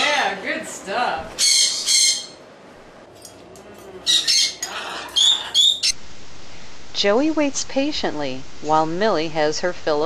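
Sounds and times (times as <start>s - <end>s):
cockatoo squawking: 1.3s - 2.4s, 4.0s - 6.0s.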